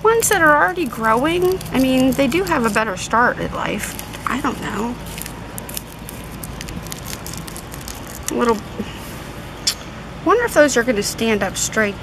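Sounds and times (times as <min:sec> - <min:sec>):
low background rumble: 0:00.0 - 0:12.0
hands in loose soil crackling: 0:00.1 - 0:03.2, 0:03.8 - 0:08.6.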